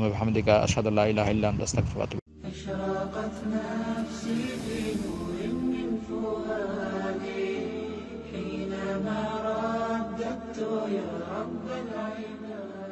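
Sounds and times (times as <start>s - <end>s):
person singing slow chant: 2.4s - 12.9s.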